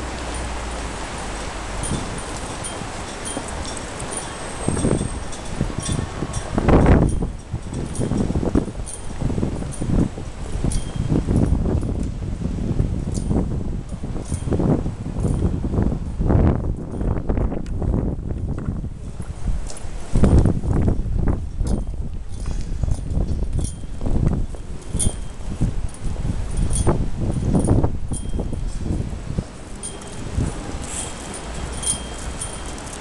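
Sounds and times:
footsteps dull thumps: 16.8s - 33.0s.

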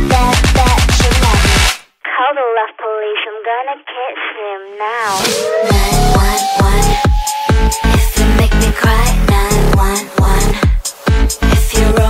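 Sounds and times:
electronic dance music: 0.0s - 1.8s, 4.8s - 12.0s
high-pitched telephone-like voice: 2.2s - 7.0s.

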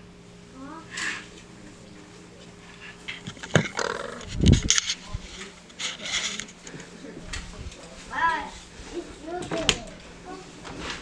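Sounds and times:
microphone handling noise: 3.2s - 6.3s.

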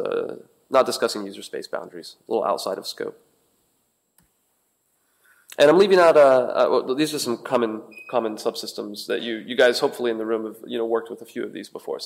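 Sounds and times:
person speaking: 5.5s - 12.0s.

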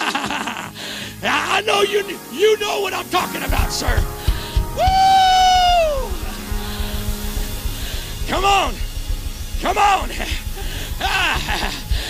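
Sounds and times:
soft band music with low beat: 1.5s - 12.0s
man shouting woo: 4.8s - 6.2s.

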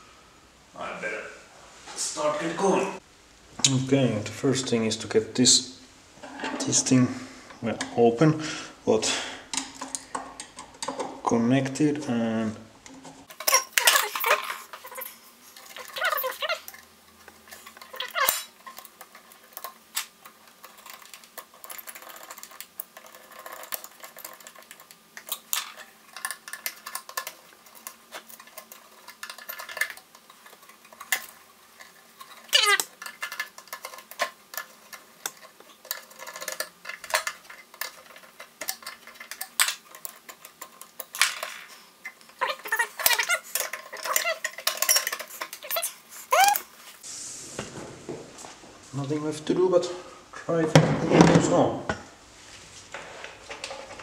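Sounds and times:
metal clicks clinks and rattles: 17.5s - 46.7s.

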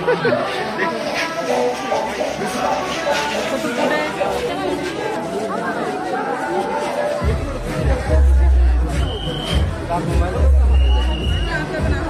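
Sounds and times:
crowd chatter: 0.0s - 12.0s
loud music with deep bass: 7.2s - 12.0s.

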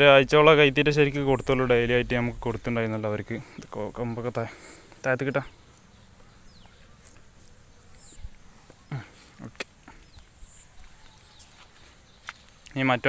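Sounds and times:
insects: 0.0s - 13.0s.

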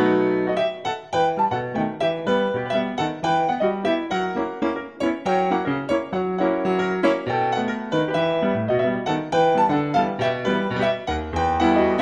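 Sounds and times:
rhythmic piano music: 0.0s - 12.0s.

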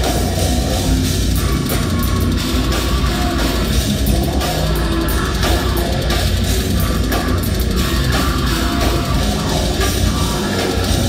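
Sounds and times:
bass guitar: 0.0s - 11.0s
distorted guitars: 0.0s - 11.0s
fast drum kit: 0.0s - 11.0s.

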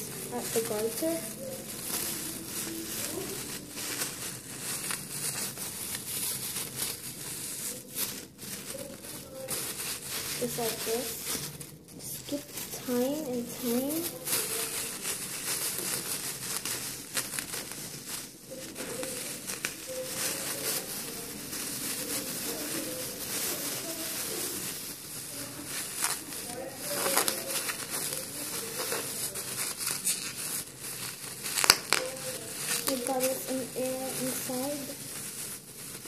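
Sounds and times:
cellophane crinkling and rustling: 0.0s - 36.0s.

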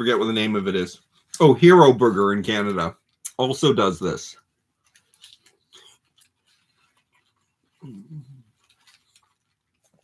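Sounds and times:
man humming while chewing: 7.8s - 8.6s.

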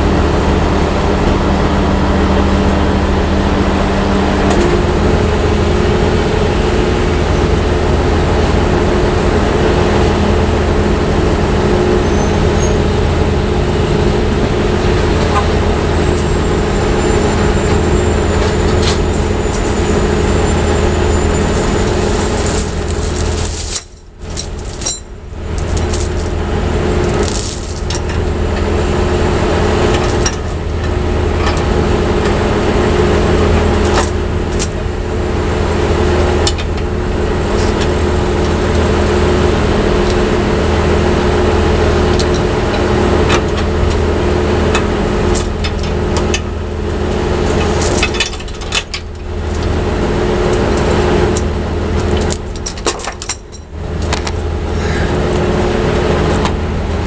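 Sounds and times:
truck engine idling: 0.0s - 57.0s
metallic clinks of tow chain: 15.8s - 26.4s, 27.0s - 28.1s, 33.9s - 34.9s, 45.3s - 46.3s, 47.0s - 49.7s.

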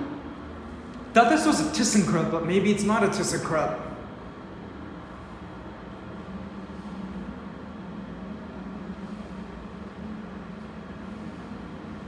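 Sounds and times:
elevator running drone: 0.0s - 12.0s.

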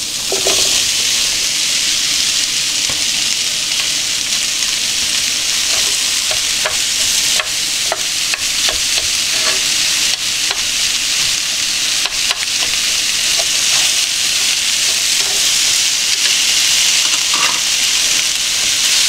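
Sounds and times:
food sizzling in a frying pan: 0.0s - 19.0s
chopsticks clicking against pan: 12.0s - 13.9s.

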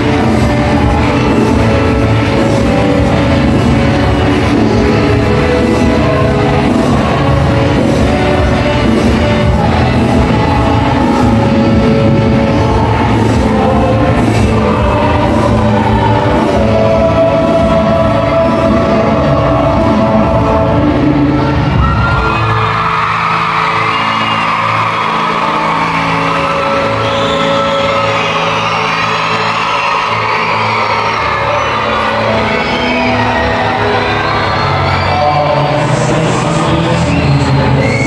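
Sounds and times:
live music through speakers: 0.0s - 38.0s
crowd cheering and whooping: 21.4s - 38.0s.

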